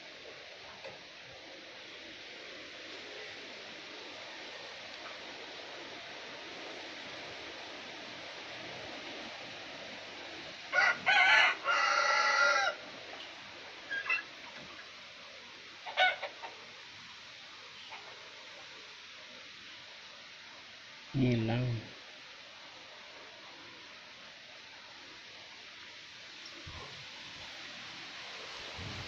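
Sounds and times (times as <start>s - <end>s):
steady background hiss: 0.0s - 29.0s
rooster crowing: 10.7s - 12.8s.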